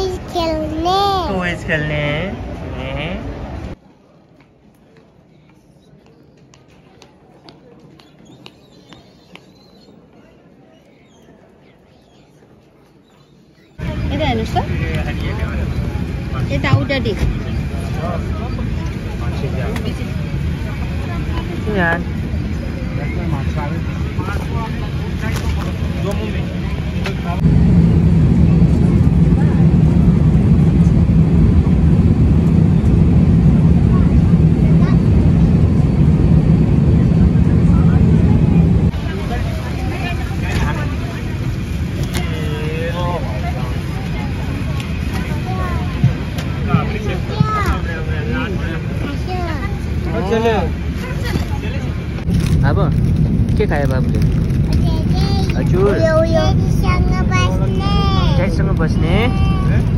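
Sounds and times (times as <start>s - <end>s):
airliner cabin drone: 0.0s - 3.8s, 8.3s - 59.9s.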